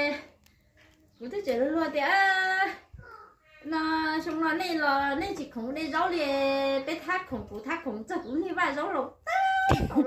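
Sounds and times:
woman singing unaccompanied: 0:01.2 - 0:03.0, 0:03.6 - 0:07.0.

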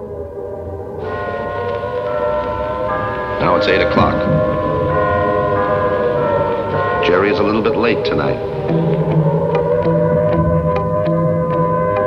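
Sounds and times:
ambient music held chord: 0:00.0 - 0:12.0.

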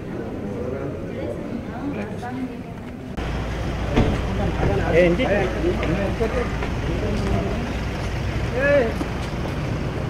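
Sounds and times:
traffic and crowd rumble: 0:00.0 - 0:10.0.

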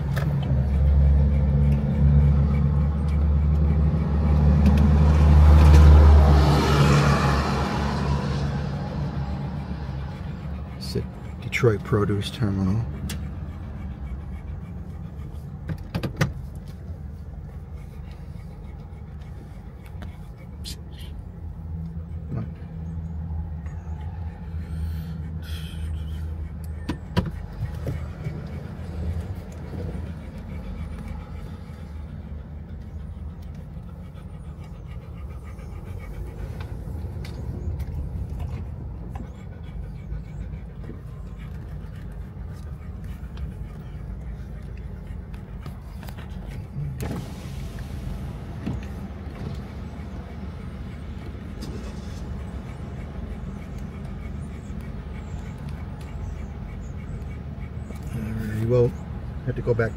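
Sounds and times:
car engine and tyre hum: 0:00.0 - 0:59.9.

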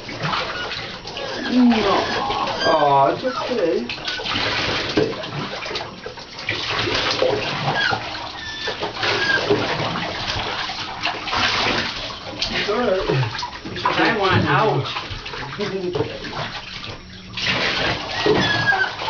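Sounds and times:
bathwater sloshing and splashing: 0:00.0 - 0:19.0.

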